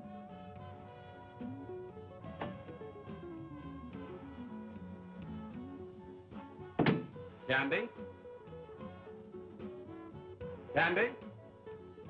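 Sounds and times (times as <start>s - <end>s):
soft background music: 0.0s - 12.0s
door thunking shut: 2.3s - 2.8s, 6.8s - 7.2s.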